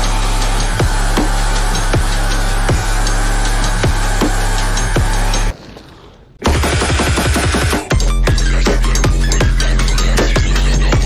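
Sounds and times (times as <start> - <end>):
loud music with heavy bass: 0.0 - 5.5, 6.4 - 11.0.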